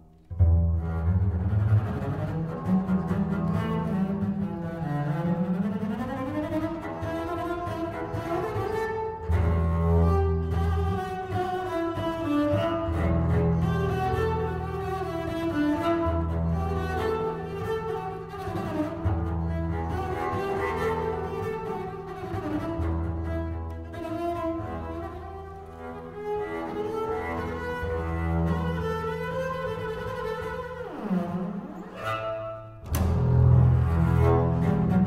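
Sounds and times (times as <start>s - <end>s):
bowed double bass notes: 0.0s - 35.0s.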